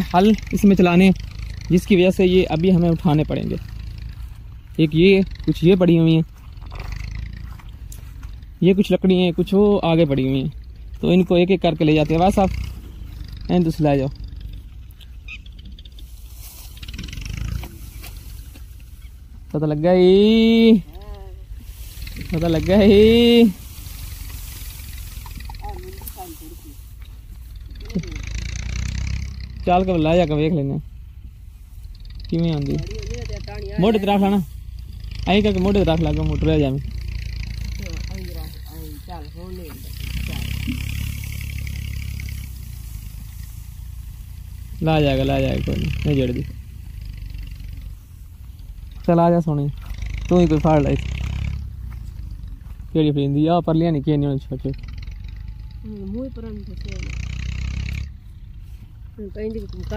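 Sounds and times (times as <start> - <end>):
dry leafy branches rustling: 0.0 - 59.9
low engine hum: 0.0 - 59.9.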